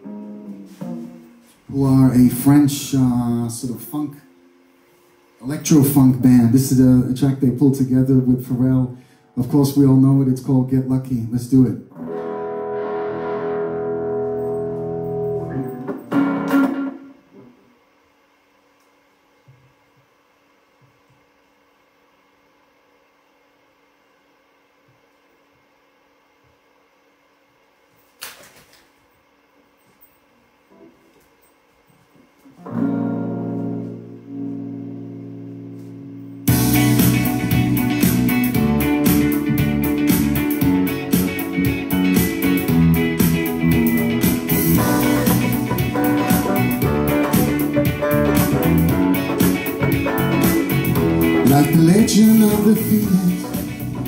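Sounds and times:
electric guitar chords: 0.0s - 10.0s, 11.9s - 17.8s, 32.5s - 54.0s.

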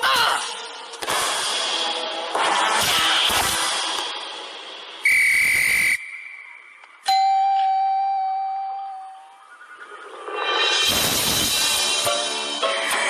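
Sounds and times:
sharp whistle blast: 5.0s - 6.8s
bell-like ding: 7.1s - 9.4s.

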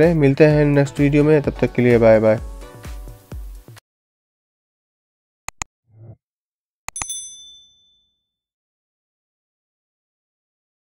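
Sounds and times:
notification bell ding: 6.9s - 8.2s.

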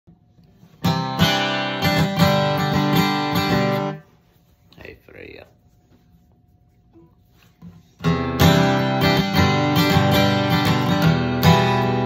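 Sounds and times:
acoustic guitar strumming: 0.6s - 4.1s, 8.0s - 12.0s.

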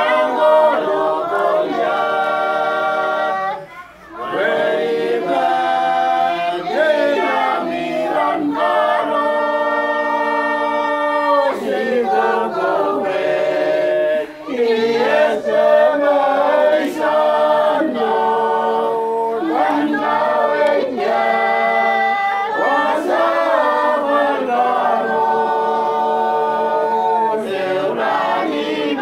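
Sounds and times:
group singing a hymn unaccompanied: 0.0s - 29.0s.

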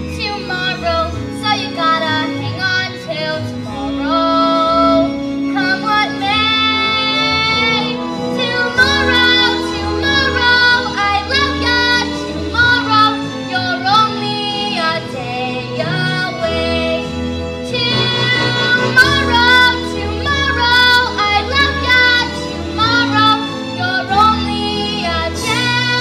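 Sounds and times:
instrumental accompaniment: 0.0s - 26.0s
girl singing: 5.6s - 17.0s, 17.6s - 26.0s.

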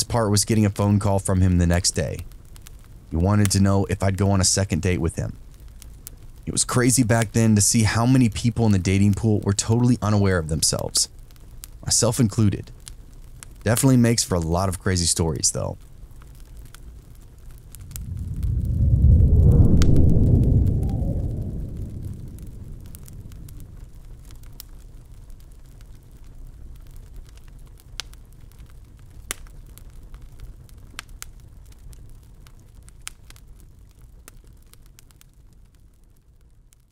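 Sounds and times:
fireplace crackling and popping: 0.0s - 36.9s
deep rumble: 17.4s - 25.4s.

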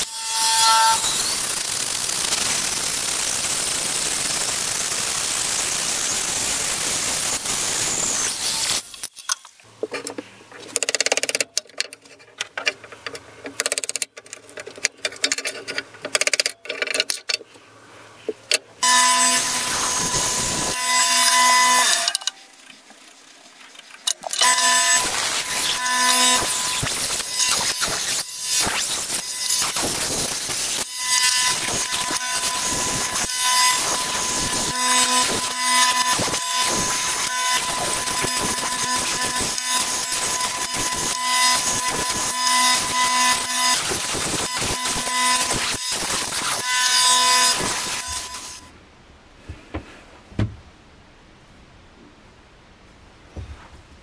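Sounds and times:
bandsaw cutting wood: 0.0s - 9.1s, 18.8s - 22.3s, 24.2s - 48.7s.

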